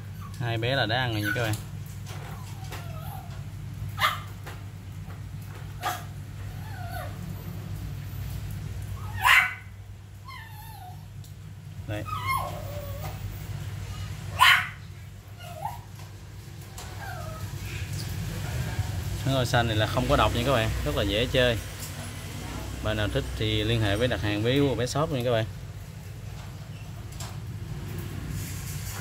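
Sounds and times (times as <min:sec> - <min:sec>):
dog whimpering: 0:01.1 - 0:01.6, 0:02.2 - 0:03.4, 0:05.8 - 0:07.3, 0:10.2 - 0:11.1, 0:11.9 - 0:13.3, 0:15.4 - 0:15.9, 0:16.7 - 0:18.0
dog yipping: 0:01.1 - 0:03.4, 0:04.0 - 0:04.4, 0:05.8 - 0:07.2, 0:09.0 - 0:11.1, 0:12.0 - 0:13.2, 0:14.3 - 0:15.9, 0:16.7 - 0:18.1.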